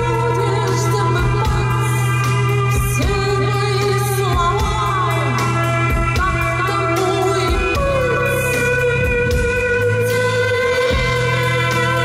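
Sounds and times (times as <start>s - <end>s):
guitar: 0.0s - 12.0s
woman singing: 0.0s - 12.0s.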